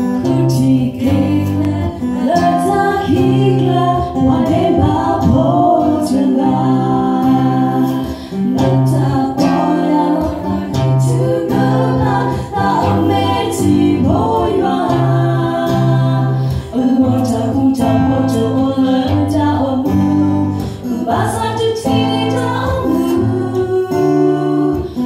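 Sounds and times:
acoustic guitar: 0.0 - 25.0
women singing together: 0.0 - 25.0.

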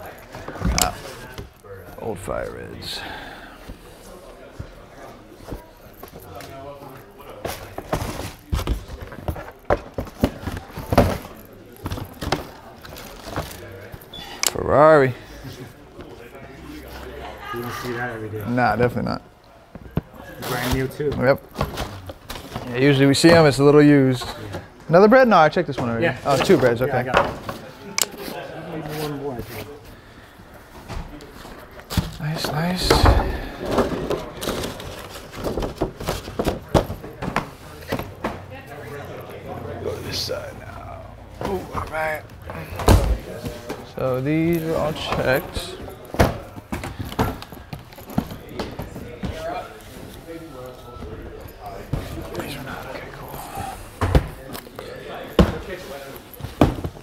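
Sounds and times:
background talk: 0.0 - 57.0
background voices: 27.1 - 35.6.

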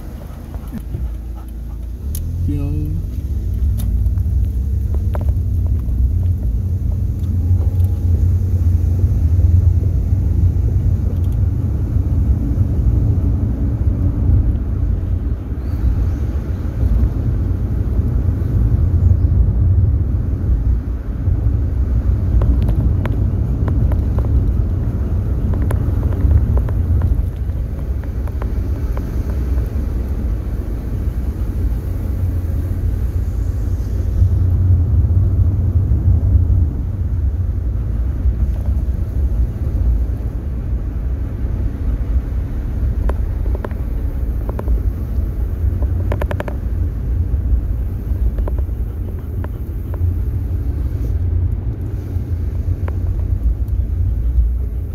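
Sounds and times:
road and engine rumble: 0.0 - 54.9.

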